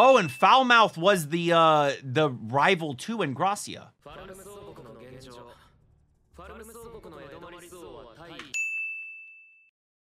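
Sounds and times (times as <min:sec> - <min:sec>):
bright ding sound effect: 0:00.0 - 0:00.8, 0:08.6 - 0:09.7.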